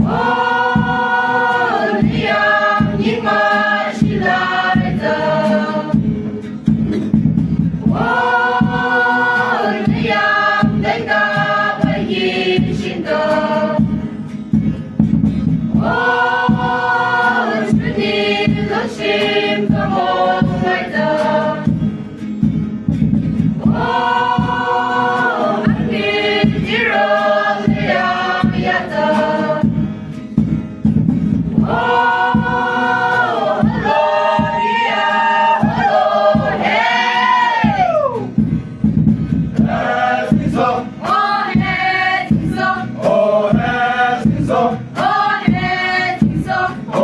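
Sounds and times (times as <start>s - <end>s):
women's choir singing: 0.0s - 6.3s, 7.8s - 14.1s, 15.7s - 21.8s, 23.5s - 29.8s, 31.5s - 38.1s, 39.5s - 47.0s.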